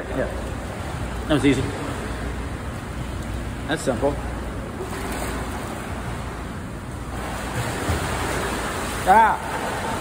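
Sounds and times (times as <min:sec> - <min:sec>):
pool water splashing: 0:00.0 - 0:10.0.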